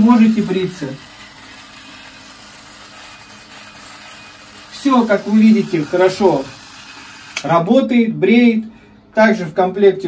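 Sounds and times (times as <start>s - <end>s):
clockwork shaver humming: 0.0s - 7.7s.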